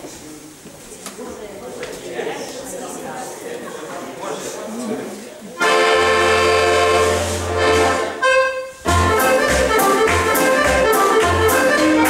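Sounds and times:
faint hall chatter: 0:00.0 - 0:12.0
accordion-led dance band: 0:05.6 - 0:12.0
steady bass beat: 0:08.9 - 0:12.0.

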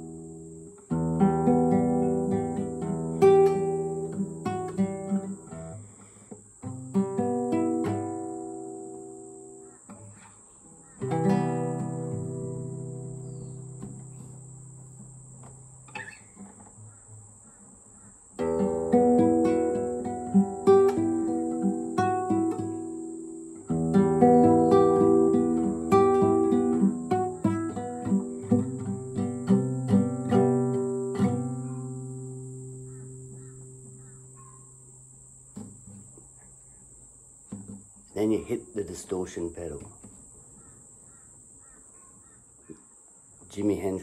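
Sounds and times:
fingerstyle classical guitar: 0:00.0 - 0:16.8, 0:18.4 - 0:34.9, 0:35.5 - 0:36.6, 0:37.5 - 0:40.2.

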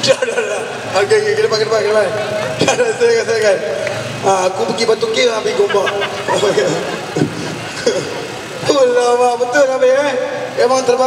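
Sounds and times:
city noise: 0:00.0 - 0:11.0
people talking on street: 0:00.0 - 0:11.0.

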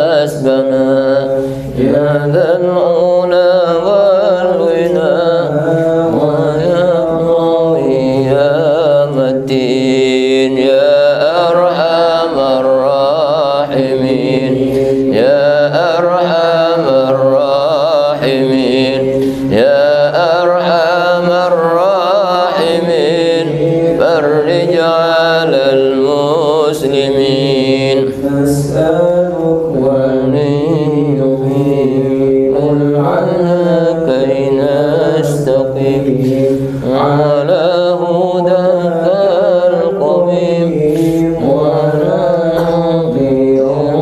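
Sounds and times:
person chanting: 0:00.0 - 0:44.0.

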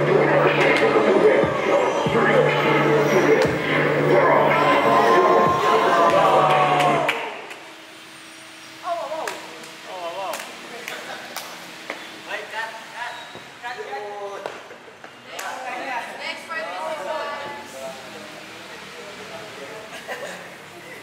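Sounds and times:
music: 0:00.0 - 0:07.2
people talking: 0:00.0 - 0:07.2, 0:08.9 - 0:11.6, 0:12.3 - 0:21.0.

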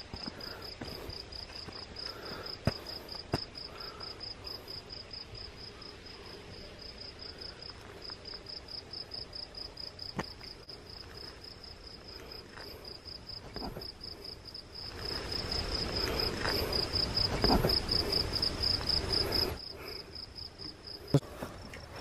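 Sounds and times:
crickets chirping: 0:00.0 - 0:22.0.

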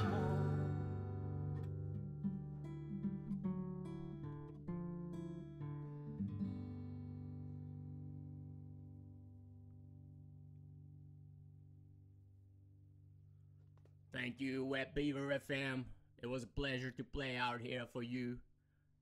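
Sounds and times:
acoustic guitar: 0:00.0 - 0:11.8.

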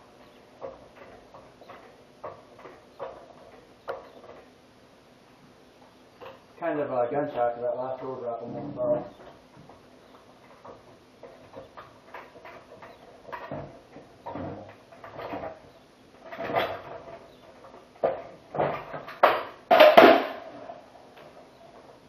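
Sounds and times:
metal clanks and knocks: 0:00.2 - 0:04.5, 0:08.0 - 0:22.0.

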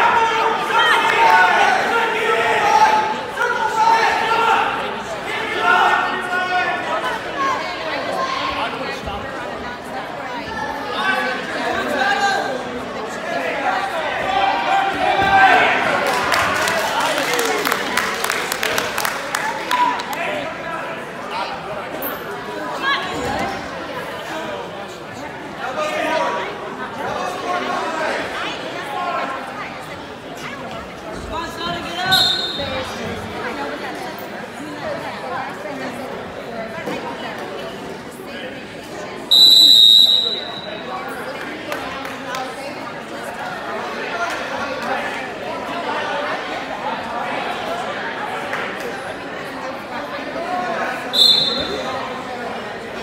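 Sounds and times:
overlapping voices of spectators: 0:00.0 - 0:03.6, 0:14.2 - 0:20.9, 0:40.9 - 0:45.6, 0:47.6 - 0:49.7
shrill whistle blast: 0:32.1 - 0:32.7, 0:39.3 - 0:40.8, 0:51.2 - 0:51.8.

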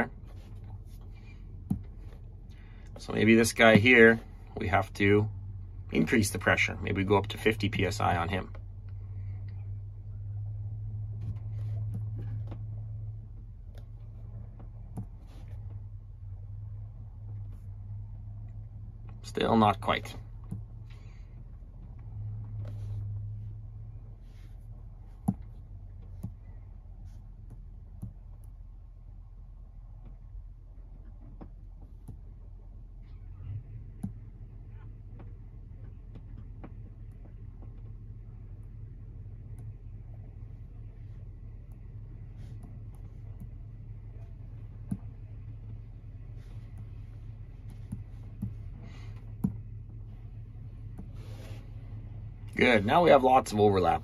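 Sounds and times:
steady low hum: 0:00.0 - 0:54.0.

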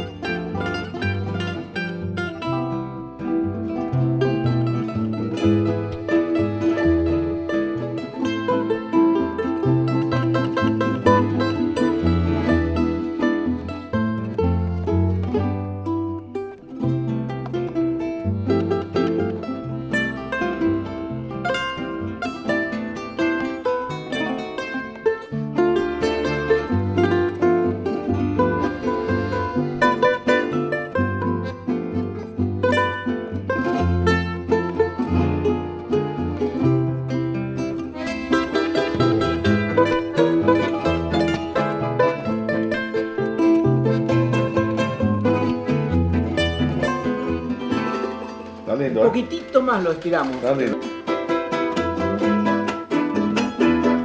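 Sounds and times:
plucked string folk music: 0:00.0 - 0:54.0.

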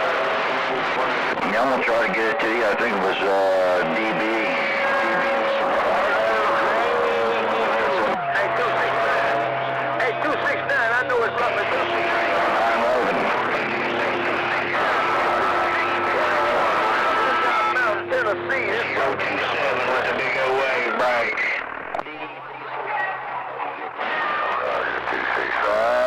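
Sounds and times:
radio static: 0:00.0 - 0:22.9, 0:23.7 - 0:26.0
garbled overlapping radio voices: 0:00.0 - 0:26.0.

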